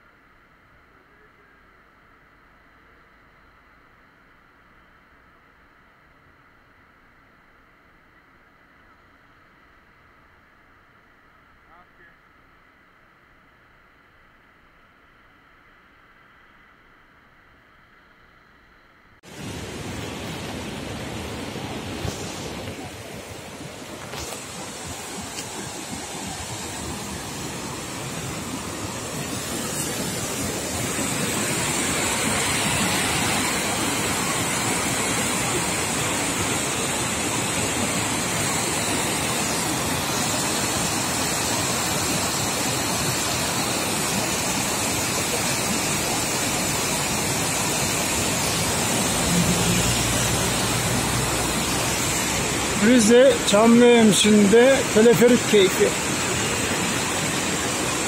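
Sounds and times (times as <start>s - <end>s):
river rushing over rapids: 19.2s - 58.0s.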